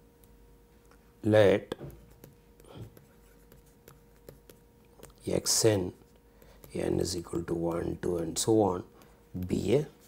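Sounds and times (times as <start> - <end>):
stylus tapping and scratching screen: 1.7 - 10.0.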